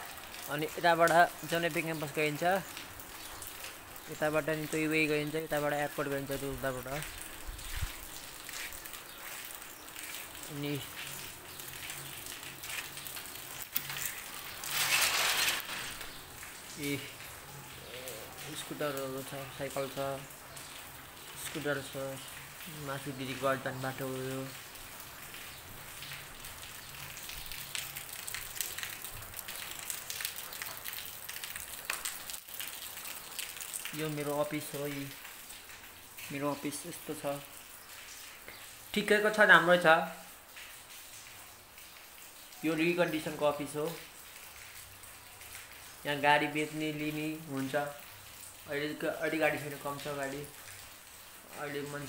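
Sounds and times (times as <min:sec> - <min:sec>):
metal gate rattling and scraping: 0:13.8 - 0:16.2.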